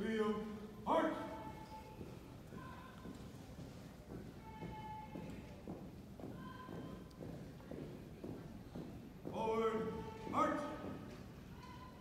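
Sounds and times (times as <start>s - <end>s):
marching footsteps on carpet: 1.4s - 11.5s.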